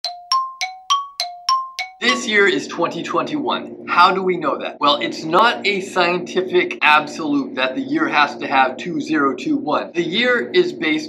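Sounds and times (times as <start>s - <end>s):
bell-like chime notes: 0.0s - 2.5s.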